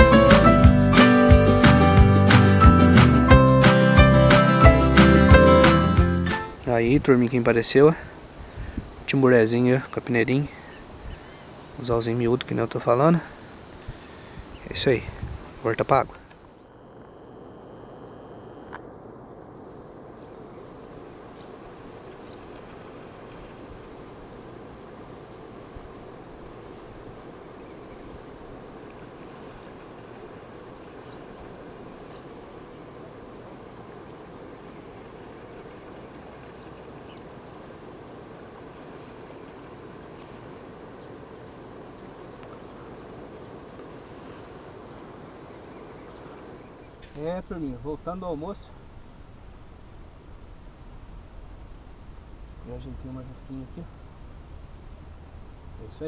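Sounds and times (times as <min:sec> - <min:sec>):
high insect drone: 0:00.0 - 0:49.6, 0:52.2 - 0:56.0
faint chirps: 0:13.2 - 0:47.3
flowing river water: 0:20.5 - 0:47.3.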